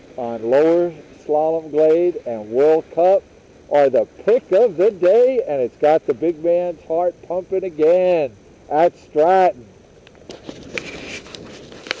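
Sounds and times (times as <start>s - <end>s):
small clicks and rustling: 10.0s - 12.0s.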